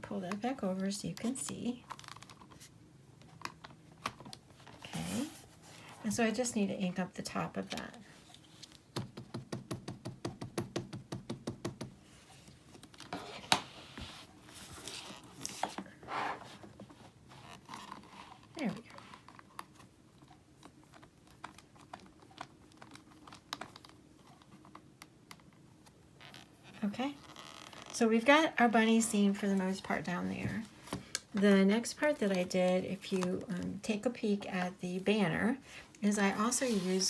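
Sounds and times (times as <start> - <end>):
ink pad tapping rubber stamp: 9.0 - 12.0.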